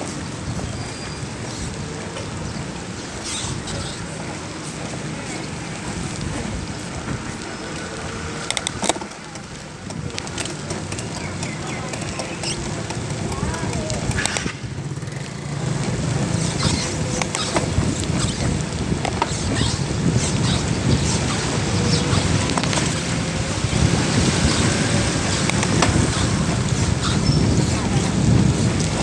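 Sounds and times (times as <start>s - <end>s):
car traffic on wet street: 0.0s - 29.0s
wind rumbling on microphone: 0.0s - 29.0s.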